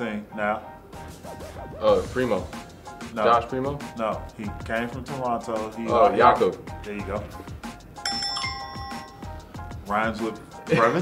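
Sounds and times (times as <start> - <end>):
background music with steady beat: 0.0 - 11.0
bright bell-like chime: 8.0 - 9.5.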